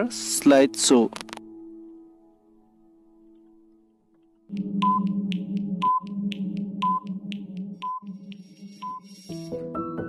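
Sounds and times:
quick timer ticks: 0:04.5 - 0:09.1
low electronic drone: 0:04.5 - 0:09.6.

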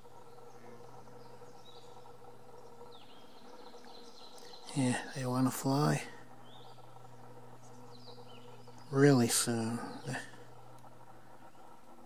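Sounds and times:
faint high bird chirps: 0:00.0 - 0:10.6
steady low hum: 0:00.0 - 0:12.0.

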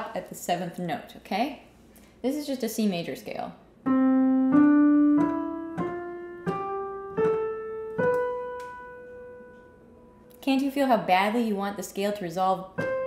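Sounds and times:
piano playing a scale: 0:03.8 - 0:10.3, 0:12.7 - 0:13.0.

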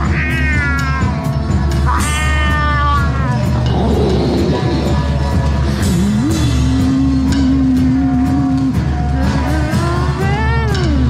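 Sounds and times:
live band music: 0:00.0 - 0:11.0
steady low drone: 0:00.9 - 0:11.0.

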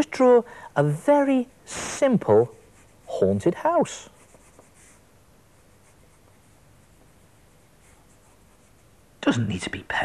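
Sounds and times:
low steady hiss: 0:00.0 - 0:10.0
crayon scratching on paper: 0:02.6 - 0:05.0, 0:05.6 - 0:07.0, 0:07.8 - 0:08.9.

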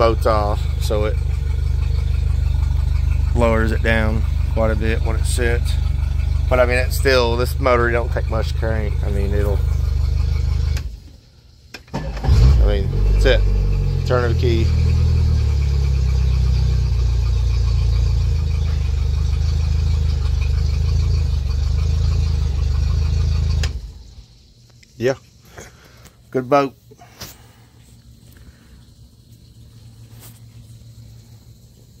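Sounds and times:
outboard motor idling: 0:00.0 - 0:24.7, 0:25.3 - 0:32.0.

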